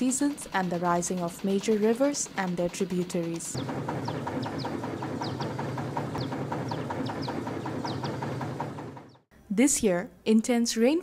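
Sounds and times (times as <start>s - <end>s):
small boat engine ticking: 0.0s - 9.3s.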